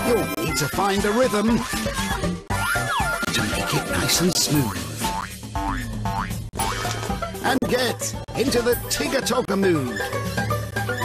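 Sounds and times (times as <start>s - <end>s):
children's tv theme music: 0.0s - 11.0s.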